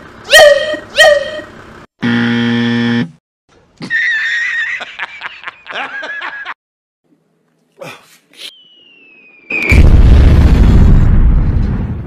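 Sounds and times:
wrong answer buzzer: 2.0s - 3.2s.

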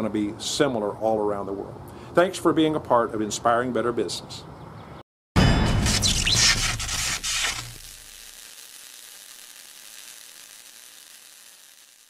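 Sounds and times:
crackling sizzling hiss: 5.8s - 12.0s.

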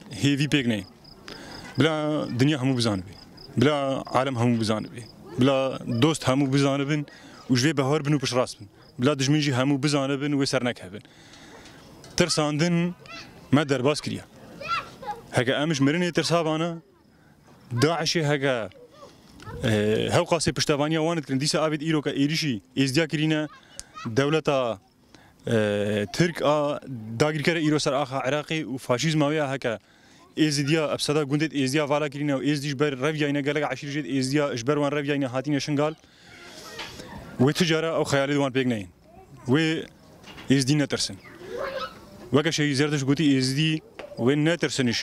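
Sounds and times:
man speaking: 0.0s - 1.0s, 1.8s - 11.0s, 12.2s - 14.3s, 15.3s - 16.9s, 17.7s - 18.8s, 19.6s - 24.8s, 25.4s - 29.8s, 30.4s - 36.0s, 37.4s - 39.9s, 40.5s - 41.2s, 42.3s - 45.0s.

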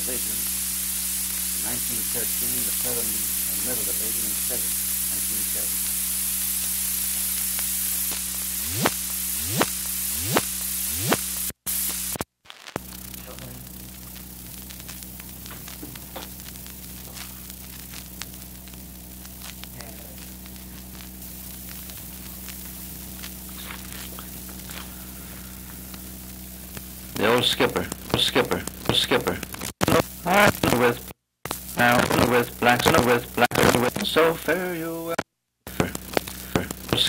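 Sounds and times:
record crackles: 0.0s - 37.0s
record surface hiss: 0.0s - 37.0s
low hum: 12.8s - 31.0s.

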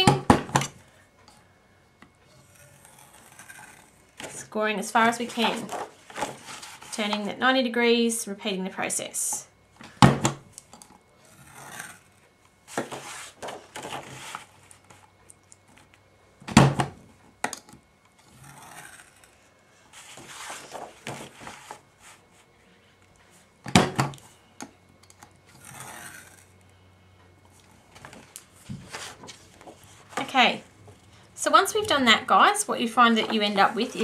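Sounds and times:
scoring tool scraping: 2.3s - 4.4s, 25.5s - 26.4s, 33.1s - 34.0s
paper rustling: 28.0s - 30.4s.

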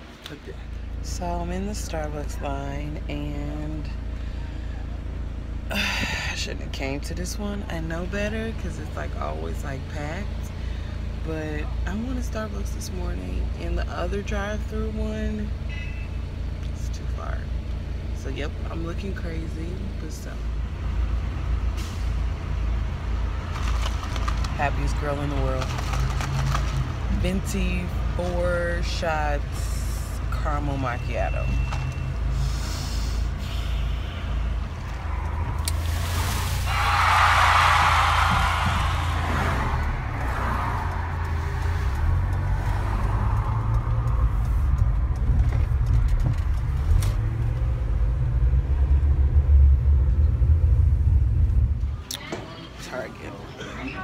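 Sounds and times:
engine and tyre rumble: 0.0s - 54.0s
rushing noise: 32.4s - 41.6s
car cabin rumble: 34.5s - 52.0s.

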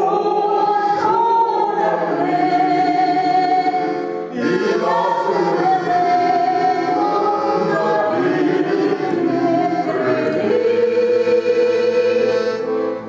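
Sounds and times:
group of voices singing: 0.0s - 13.0s
piano accordion: 0.0s - 13.0s.

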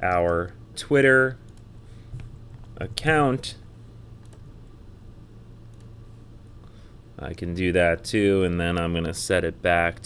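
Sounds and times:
low steady hum: 0.0s - 10.0s
keyboard clicks: 4.2s - 4.4s.

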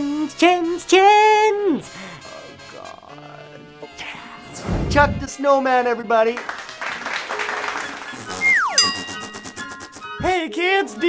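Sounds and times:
tone sliding downward: 8.4s - 10.0s
bright chime with sparkle: 8.8s - 9.8s.

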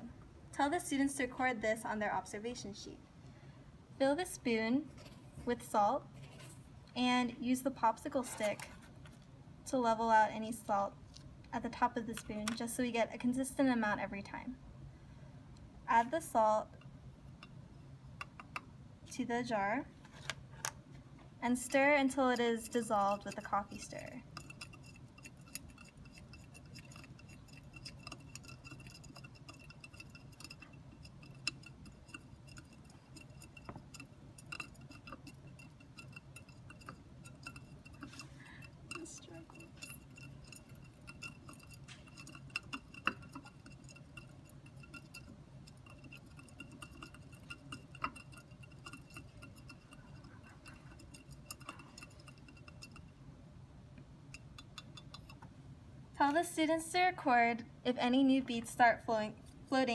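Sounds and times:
stirrer tapping glass jar: 18.2s - 18.7s, 21.6s - 53.2s, 54.3s - 55.5s.

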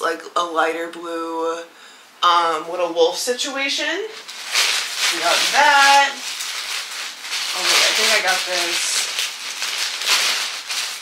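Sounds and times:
clothes and packaging rustling: 4.0s - 11.0s.

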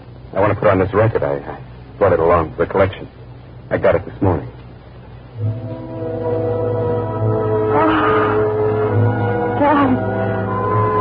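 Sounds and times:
band chords from a record: 5.2s - 11.0s.

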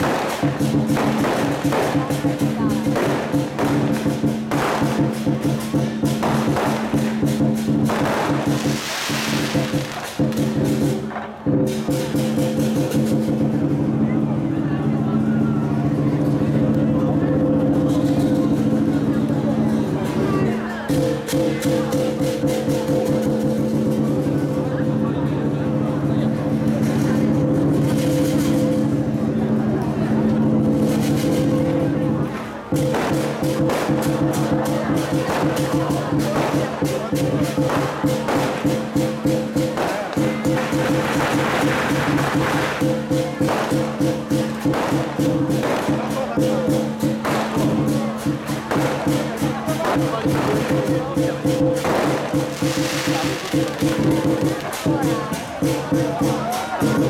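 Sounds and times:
drum cymbals and gong percussion: 0.0s - 57.0s.

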